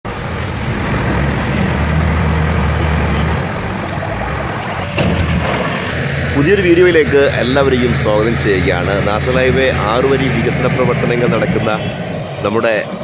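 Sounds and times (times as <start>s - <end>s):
heavy diesel engines under load: 0.0s - 13.0s.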